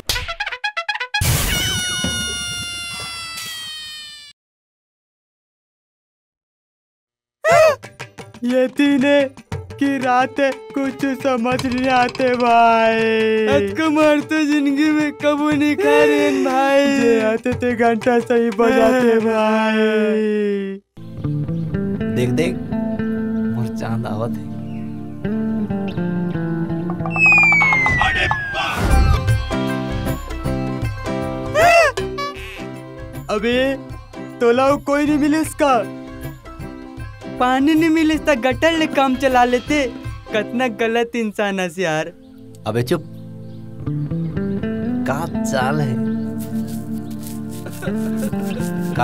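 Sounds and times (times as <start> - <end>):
film music with plucked guitar: 21.0 - 33.2, 42.2 - 49.0
long ringing tone sinking in pitch: 27.0 - 28.8.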